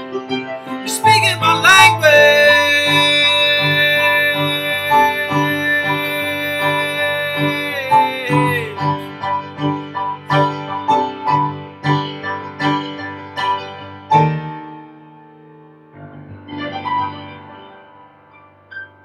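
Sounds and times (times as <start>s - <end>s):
keyboard chords: 0.0s - 18.6s
man singing held note: 0.7s - 9.1s.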